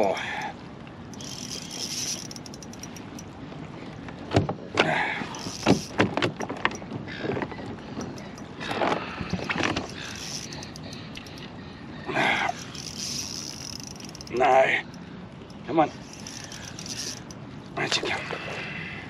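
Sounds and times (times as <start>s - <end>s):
sharp clicks and knocks: 5.4s - 6.9s.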